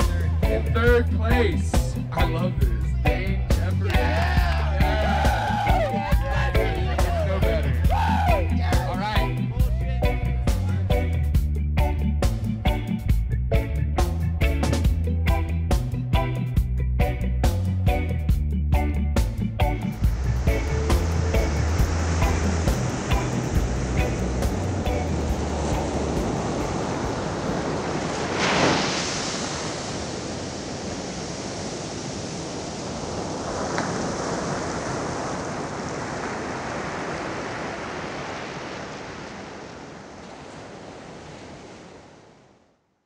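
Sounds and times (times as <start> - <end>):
music with a beat: 0.0 - 25.2
ocean surf on a beach: 19.9 - 42.8.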